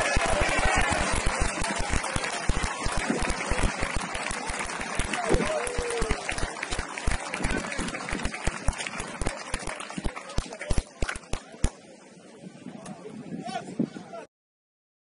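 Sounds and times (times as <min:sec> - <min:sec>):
players shouting and cheering: 0:00.0 - 0:10.8
loud whoop: 0:05.2 - 0:06.2.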